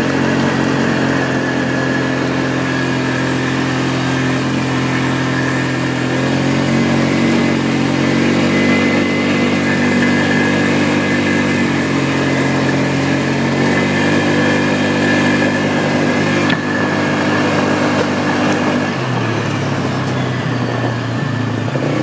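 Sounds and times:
atv engine running: 0.0 - 22.0.

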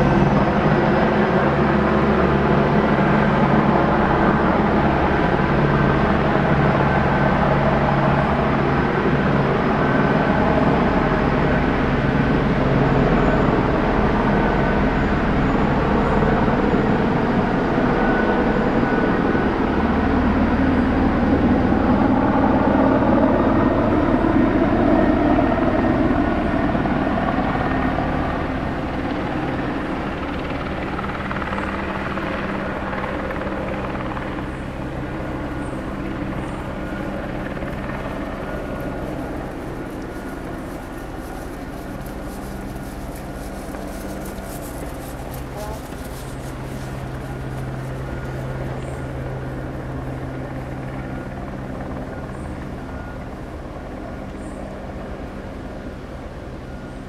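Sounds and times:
passing engine drone: 0.0 - 57.0.

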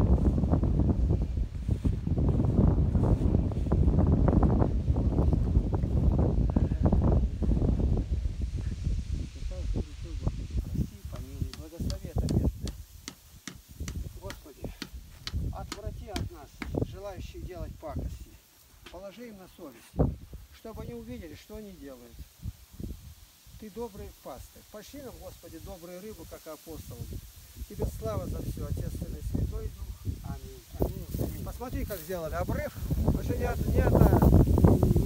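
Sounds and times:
wind buffeting microphone: 0.0 - 18.4, 20.0 - 21.3, 22.2 - 24.1, 26.9 - 35.0
footsteps rustling dry grass: 0.0 - 35.0.

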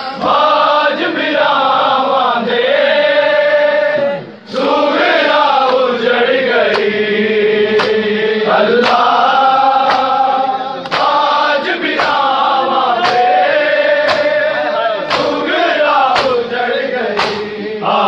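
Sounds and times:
men chanting a lament: 0.0 - 18.0
chest-beating slaps: 5.6 - 5.9, 6.6 - 8.2, 8.8 - 10.2, 10.8 - 17.6.

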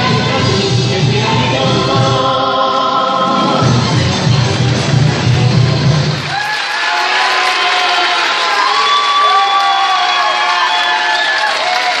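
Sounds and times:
music: 0.0 - 6.4
applause: 6.1 - 12.0
audience cheering and whooping: 6.1 - 12.0.

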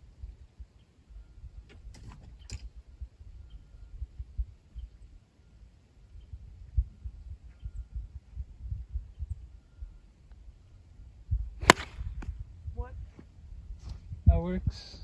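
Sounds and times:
steady low rumble: 2.7 - 14.3
golf club striking ball: 11.6 - 12.0.

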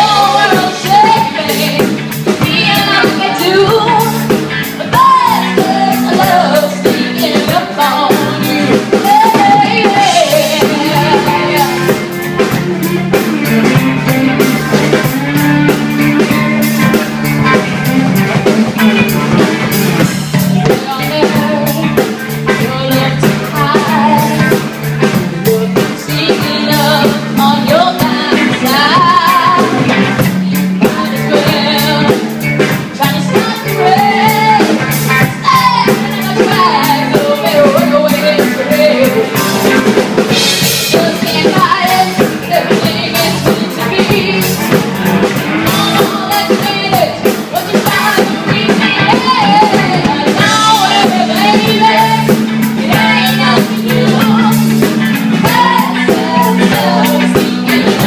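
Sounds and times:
woman singing into a microphone: 0.0 - 16.4, 20.3 - 44.8, 45.5 - 58.0
bass guitar: 0.0 - 58.0
drum kit beat: 0.0 - 58.0
electric guitar: 0.0 - 58.0
live rock band playing: 0.0 - 58.0.

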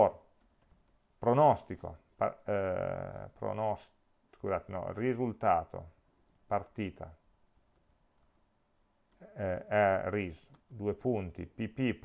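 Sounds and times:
keyboard typing clicks: 0.4 - 1.0, 7.7 - 8.5.

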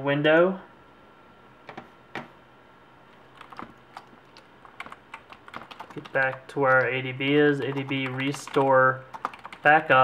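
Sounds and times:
computer keyboard typing: 3.3 - 10.0.

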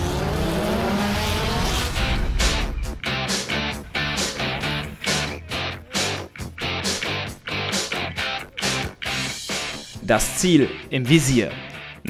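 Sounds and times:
race car engine accelerating: 0.0 - 3.0.

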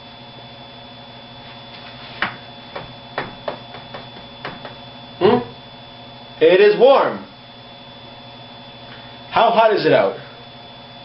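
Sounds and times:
electrical mains hum: 0.0 - 11.0
light irregular taps: 2.2 - 4.8.

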